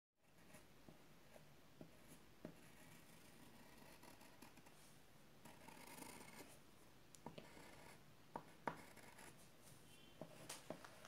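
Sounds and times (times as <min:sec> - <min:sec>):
pencil scratching on paper: 0:00.2 - 0:06.6, 0:07.3 - 0:09.5.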